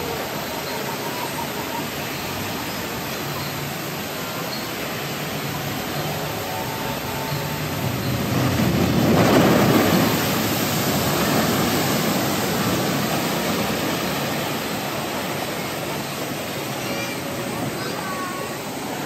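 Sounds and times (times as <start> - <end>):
churning water: 0.0 - 19.0
waterfalls rushing: 0.0 - 19.0
boat plunging with loud splash: 7.6 - 15.8.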